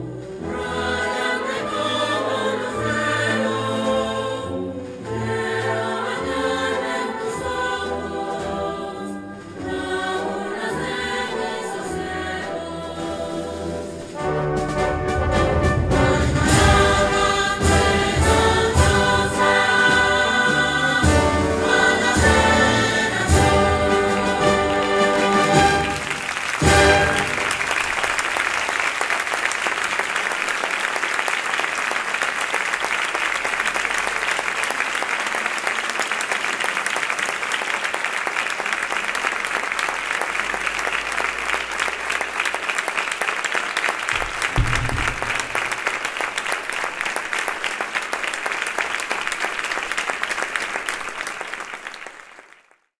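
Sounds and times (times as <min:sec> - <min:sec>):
audience applause: 0:24.2 - 0:52.9
low thump: 0:44.2 - 0:45.8.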